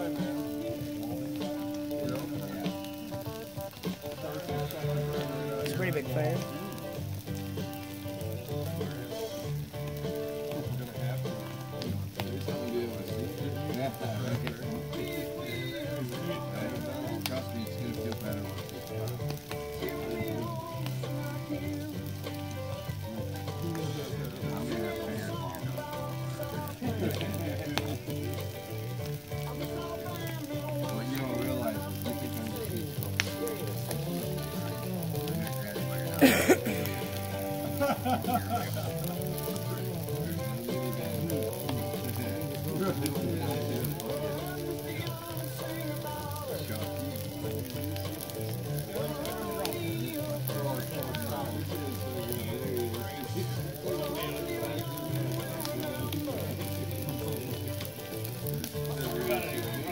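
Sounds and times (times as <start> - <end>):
background music: 0.0 - 59.9
fire sizzling and crackling: 0.0 - 59.9
sharp pops: 24.8 - 43.2.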